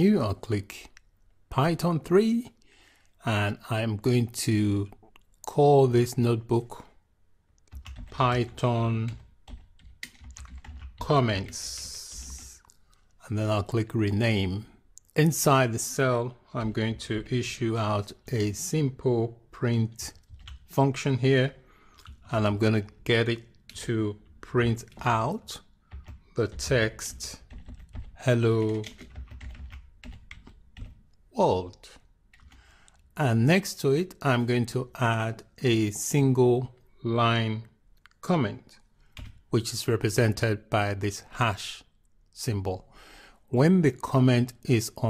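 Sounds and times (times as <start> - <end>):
computer keyboard typing: 7.7 - 12.8, 20.1 - 20.7, 23.4 - 31.1, 32.3 - 33.1, 39.1 - 39.4.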